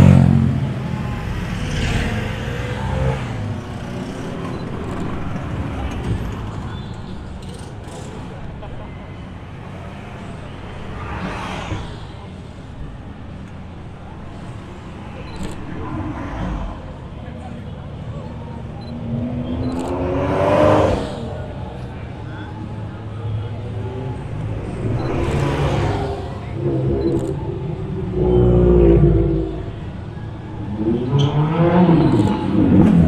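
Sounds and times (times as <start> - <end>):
car engine revving: 0.0 - 5.8, 24.1 - 33.0
car engines running at low revs: 12.9 - 31.1.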